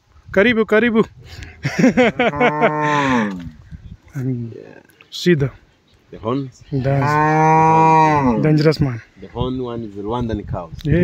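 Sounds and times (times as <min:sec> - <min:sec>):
cattle mooing: 0:02.2 - 0:03.5, 0:06.8 - 0:08.7.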